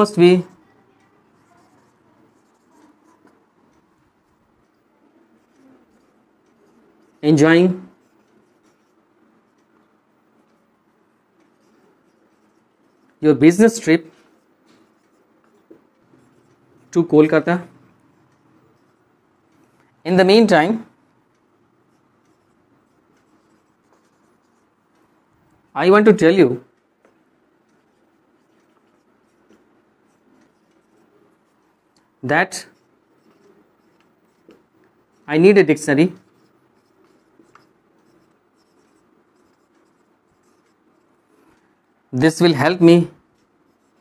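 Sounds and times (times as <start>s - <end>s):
marker pen scratching on whiteboard: 0.0s - 44.0s.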